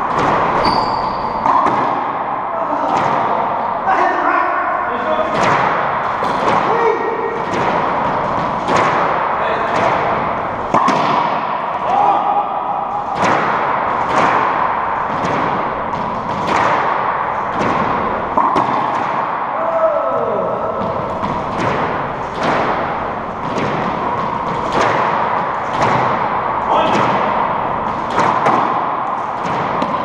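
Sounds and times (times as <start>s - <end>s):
racquetball hits echoing in court: 0.0s - 30.0s.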